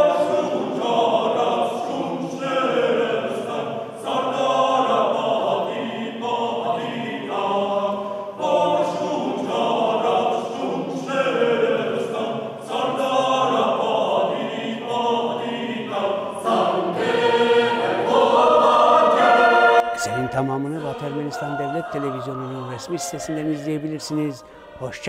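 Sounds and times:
mixed choir singing a cappella: 0:00.0 - 0:25.0.

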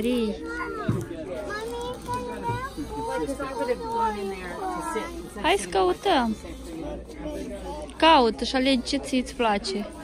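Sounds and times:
background voices chattering: 0:00.0 - 0:10.0.

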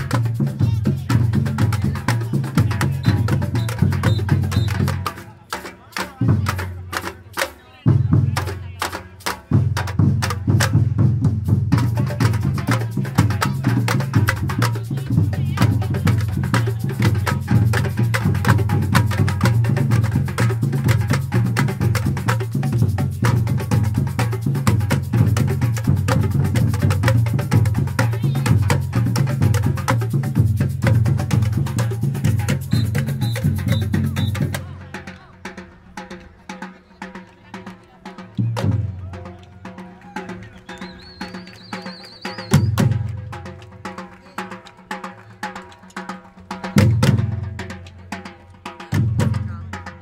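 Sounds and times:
bass drums: 0:00.0 - 0:05.5, 0:07.9 - 0:36.3, 0:42.4 - 0:45.0, 0:46.2 - 0:50.0
snare drums: 0:00.0 - 0:50.0.

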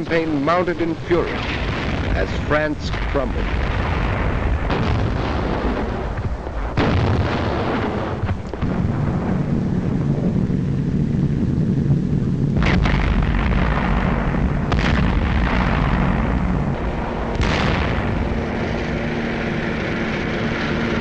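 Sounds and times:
artillery shells exploding: 0:00.0 - 0:21.0
piston aircraft engines droning: 0:00.0 - 0:21.0.

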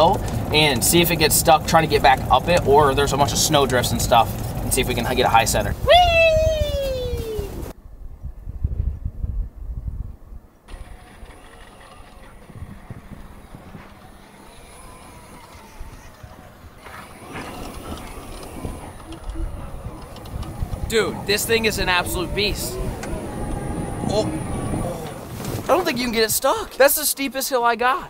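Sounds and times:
golf cart driving: 0:00.0 - 0:07.8, 0:10.7 - 0:27.2
man shouting wee: 0:05.8 - 0:07.6.

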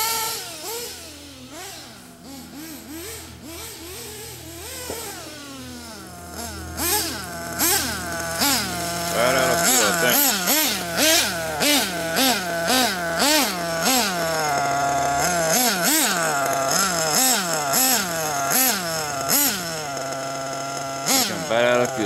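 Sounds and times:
nitro engine revving and idling: 0:00.0 - 0:22.0.

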